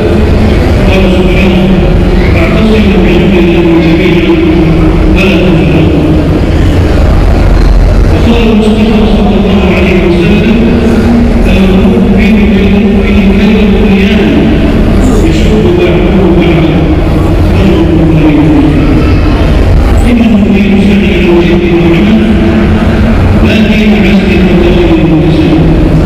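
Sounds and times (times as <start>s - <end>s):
loud low rumble: 0.0s - 26.0s.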